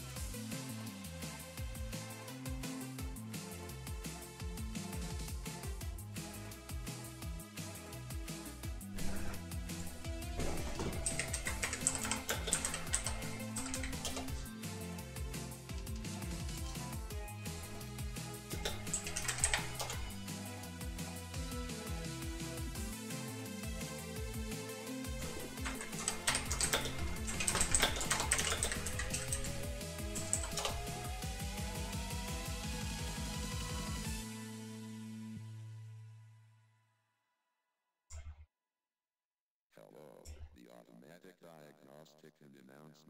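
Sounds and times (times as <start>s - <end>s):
background music: 0.0s - 36.7s
keyboard typing clicks: 9.0s - 14.5s, 17.5s - 20.3s, 25.2s - 31.2s.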